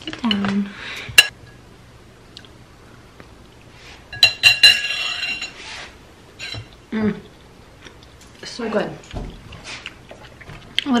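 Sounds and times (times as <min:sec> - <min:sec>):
fork clinking against ceramic bowl: 0:04.1 - 0:05.6.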